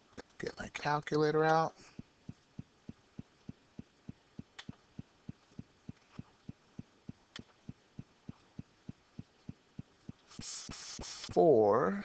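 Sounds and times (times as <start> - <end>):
faint low rhythmic thumping: 0.0 - 12.0.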